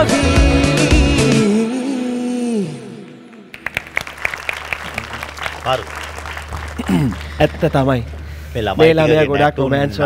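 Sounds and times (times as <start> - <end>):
hand clapping: 3.5 - 8.3.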